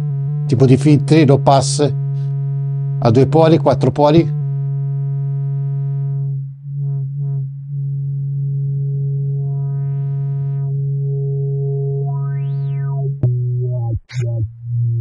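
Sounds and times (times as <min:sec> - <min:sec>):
synthesizer low note with filter sweep: 0:00.0 - 0:15.0.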